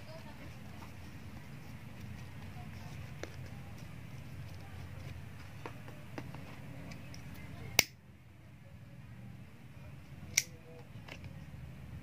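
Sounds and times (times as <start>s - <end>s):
hands handling ribbon: 0.1s - 7.5s.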